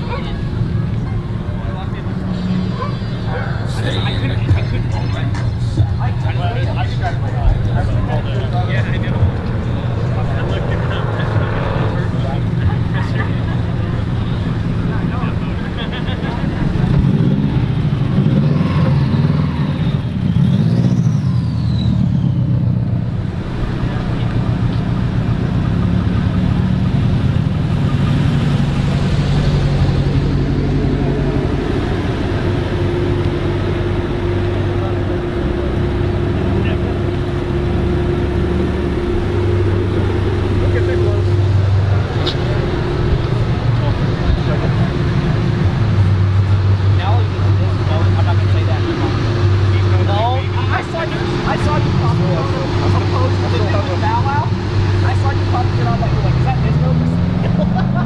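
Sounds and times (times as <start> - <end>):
car engines running: 0.0 - 58.0.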